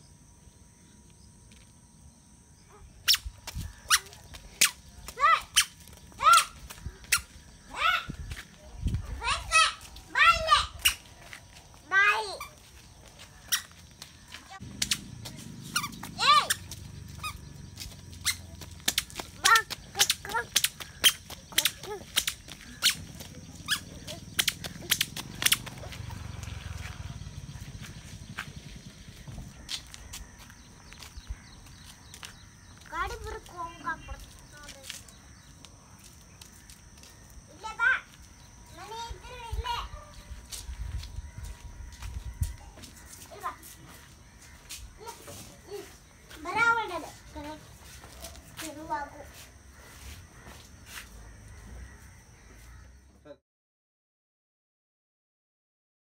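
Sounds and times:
sharp clicks: 24.4 - 25.8.

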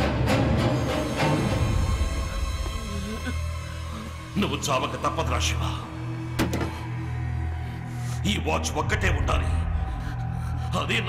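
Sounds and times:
tense low drone score: 0.0 - 11.0.

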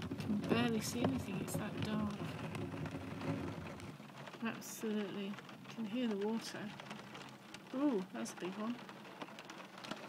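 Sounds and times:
rain falling steadily: 0.0 - 10.0.

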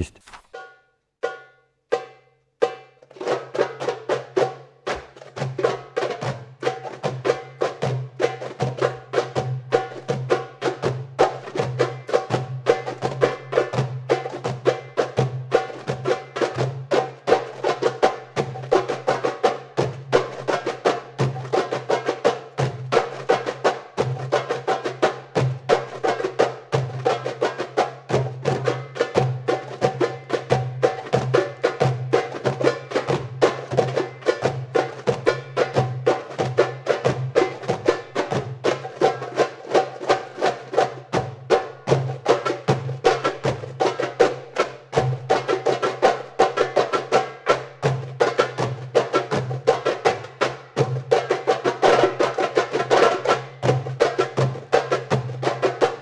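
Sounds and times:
goblet drums playing fast rhythm: 3.2 - 56.0.

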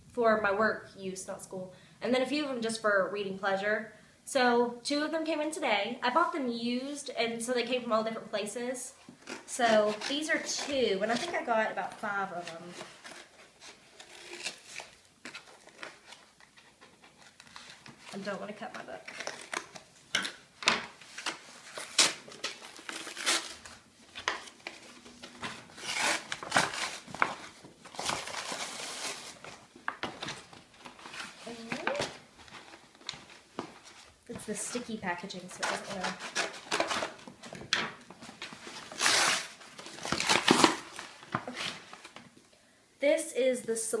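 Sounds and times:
paper rustling: 9.2 - 42.3
scissors snipping paper: 35.5 - 37.2.

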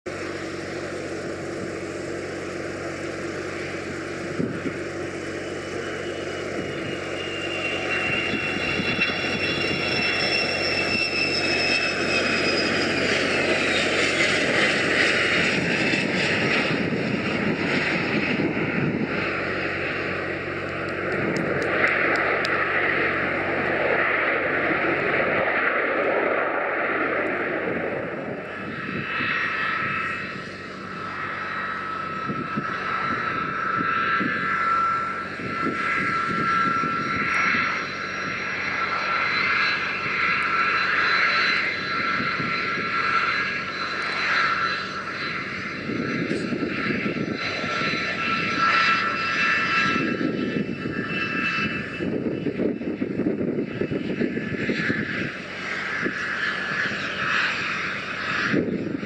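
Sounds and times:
jet engine roar: 0.0 - 59.0
jet engine whine: 0.0 - 59.0.

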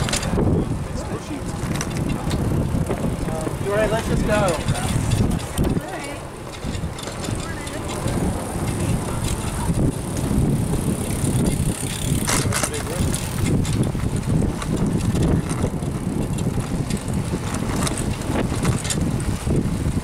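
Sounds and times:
people's voices: 0.0 - 13.4
bicycle rolling noise: 0.0 - 20.0
wind rumble on microphone: 0.0 - 20.0.

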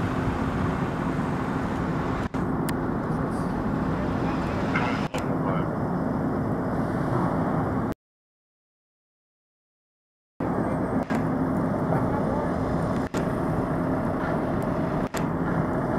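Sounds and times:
emergency vehicles driving by: 0.0 - 7.9.

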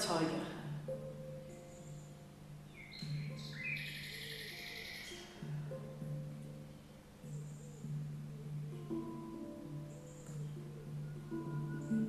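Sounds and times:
calm background music: 0.0 - 12.0
high chirping: 1.0 - 6.6, 7.2 - 12.0.

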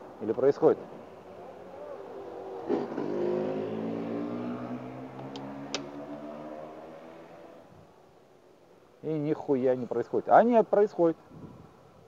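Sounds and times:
vehicle driving past: 1.9 - 7.6.

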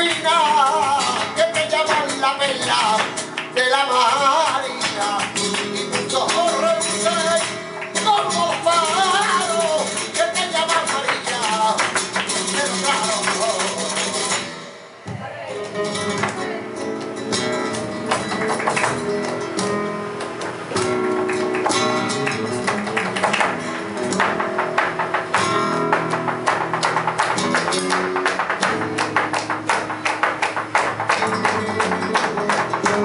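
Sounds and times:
rhythmic hand-clapping: 0.0 - 14.7, 16.0 - 33.0
acoustic guitar playing: 0.0 - 33.0.

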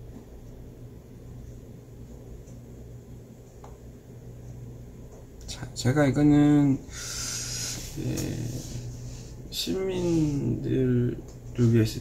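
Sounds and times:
steady low hum: 0.0 - 12.0
man's breathy hiss: 6.9 - 8.0.

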